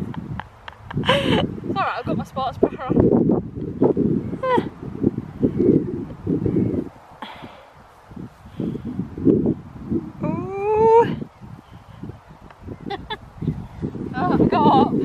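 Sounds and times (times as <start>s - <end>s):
wind rumble on microphone: 0.0s - 15.0s.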